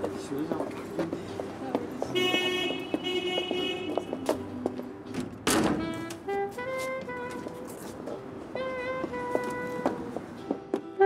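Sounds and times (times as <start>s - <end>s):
background music: 0.0s - 11.0s
car horn honking: 2.1s - 4.3s.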